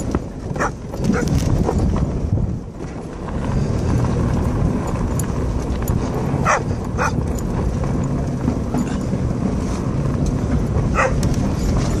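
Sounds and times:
car rumbling slowly: 0.0s - 12.0s
dog barking: 0.6s - 1.3s, 6.4s - 7.2s, 10.9s - 11.2s.

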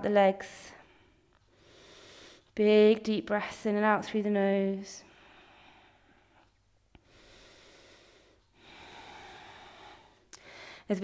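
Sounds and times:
woman breathing through nose: 0.8s - 2.6s, 5.1s - 10.9s.

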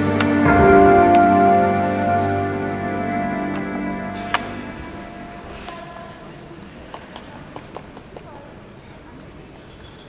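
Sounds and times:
faint voices: 4.8s - 9.8s.

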